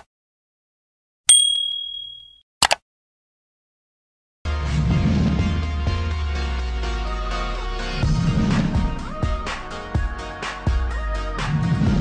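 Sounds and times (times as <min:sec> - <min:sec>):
bright bell ding: 0:01.3 - 0:02.4
click sound effect: 0:01.3 - 0:02.8.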